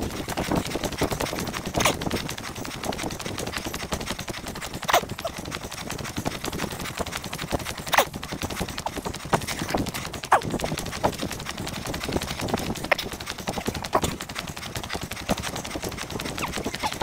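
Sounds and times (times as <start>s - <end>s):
running footsteps on tarmac: 0.0s - 17.0s.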